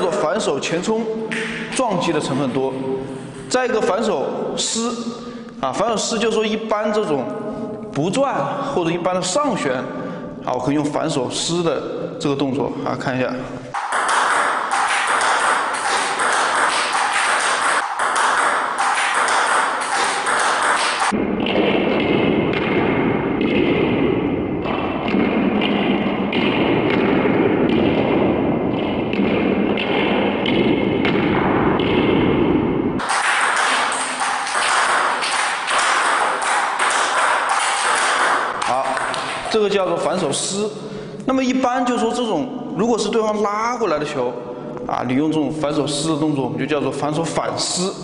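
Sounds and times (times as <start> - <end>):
table tennis ball clicks: 13.8 - 21.2.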